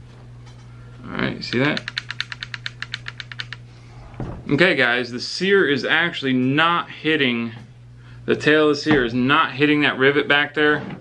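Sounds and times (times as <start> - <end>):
rapid metallic trigger clicks: 1.6 - 3.6.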